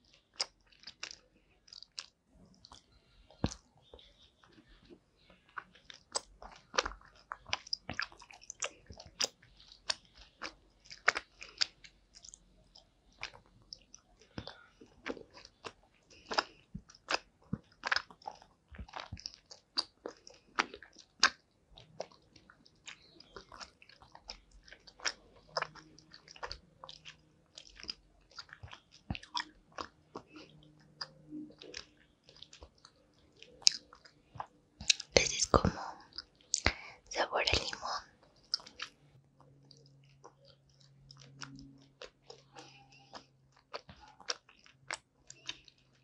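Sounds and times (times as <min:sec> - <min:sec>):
chewing gummy candy: 0:00.0 - 0:46.0.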